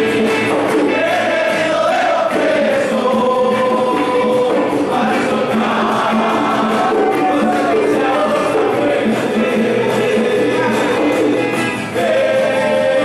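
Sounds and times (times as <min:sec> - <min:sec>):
congregation singing a hymn: 0:00.0 - 0:13.0
musical accompaniment: 0:00.0 - 0:13.0.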